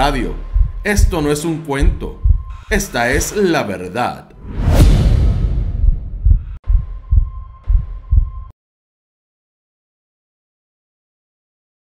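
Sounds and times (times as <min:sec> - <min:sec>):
deep heartbeat-like pulses: 0:00.0 - 0:03.4, 0:04.4 - 0:08.5
swelling logo sound: 0:04.4 - 0:06.6.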